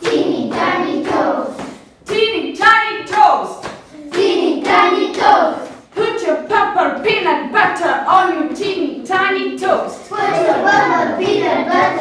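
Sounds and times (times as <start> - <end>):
children singing together: 0.0 - 1.7, 3.9 - 5.8, 10.0 - 12.0.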